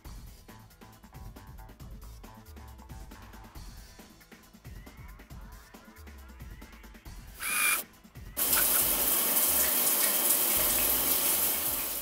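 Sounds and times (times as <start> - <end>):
short high-pitched burst: 7.4 - 7.8
shower spray hissing: 7.4 - 7.8, 8.4 - 12.0.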